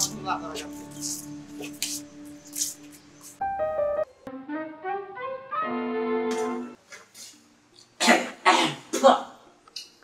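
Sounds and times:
man coughing: 8.0 - 9.0.

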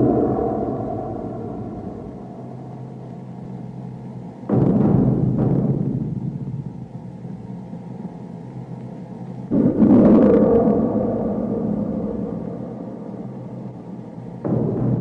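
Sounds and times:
deep booming hit: 0.0 - 3.7, 4.4 - 6.9, 9.5 - 15.0
low sustained drone: 0.0 - 4.8, 9.4 - 15.0.

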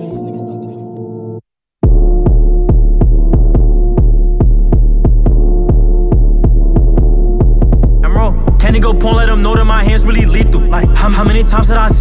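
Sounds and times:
hip hop beat: 0.0 - 12.0
deep bass: 1.8 - 12.0.

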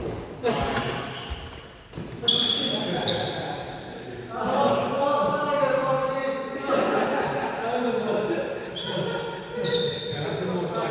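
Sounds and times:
shoe squeak: 0.0 - 1.6, 2.2 - 3.5, 8.7 - 10.4
players' voices: 2.0 - 10.9.

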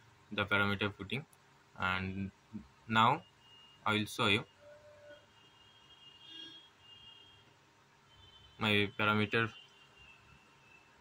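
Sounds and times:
faint high-pitched tones: 2.2 - 11.0.

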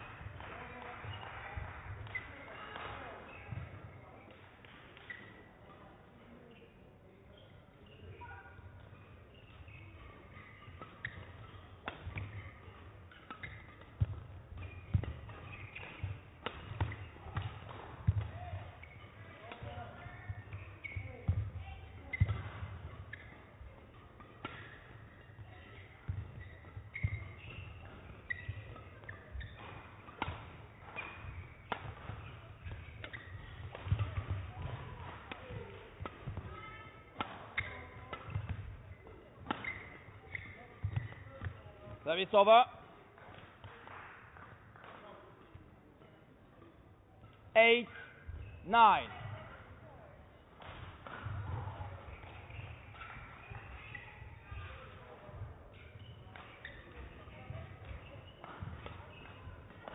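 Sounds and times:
court shoes squeaking: 0.0 - 59.9
racket striking shuttlecock: 1.9 - 2.3, 9.4 - 21.4, 22.1 - 36.5, 37.1 - 38.8, 39.4 - 41.6.

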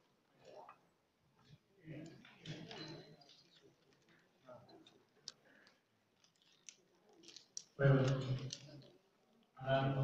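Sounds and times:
man speaking over loudspeakers: 7.8 - 8.7, 9.6 - 10.0.

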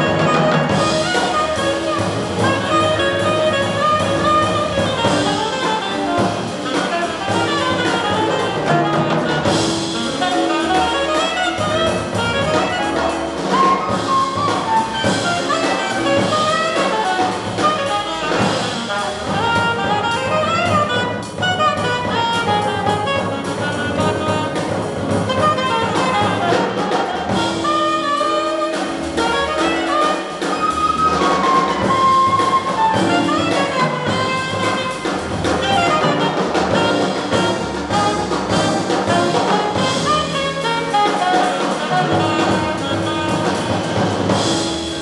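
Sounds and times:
upright bass: 0.0 - 41.0
alto saxophone melody: 0.0 - 45.0
drum kit: 0.0 - 45.0
piano: 0.0 - 45.0.

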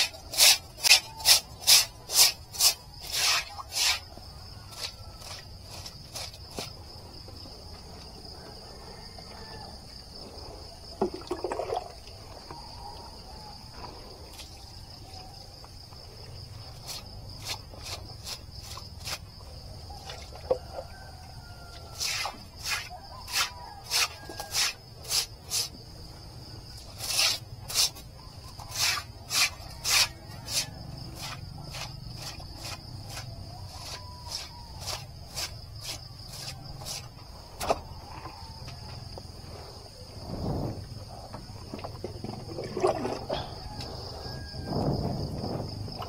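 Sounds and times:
stiff broom sweeping wet concrete: 0.0 - 4.2, 22.0 - 25.8, 26.9 - 28.0, 28.6 - 37.1
high insect drone: 0.0 - 46.0.

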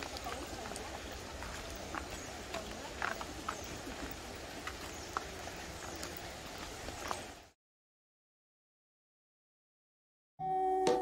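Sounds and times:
footsteps on stone: 0.0 - 7.6.

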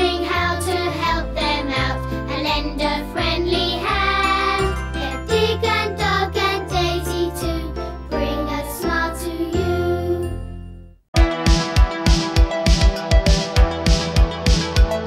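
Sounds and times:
children's tv theme music: 0.0 - 15.0.

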